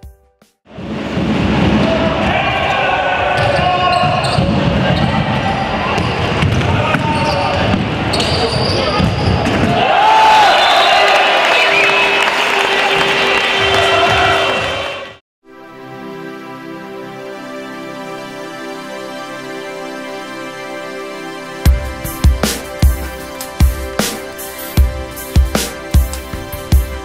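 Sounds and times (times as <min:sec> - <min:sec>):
people shouting: 0:01.8 - 0:06.0, 0:09.6 - 0:15.1.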